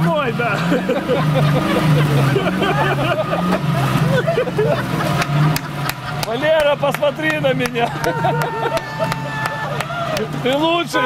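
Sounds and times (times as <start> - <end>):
vehicle engine running: 0.0 - 11.0
people talking indistinctly: 5.7 - 11.0.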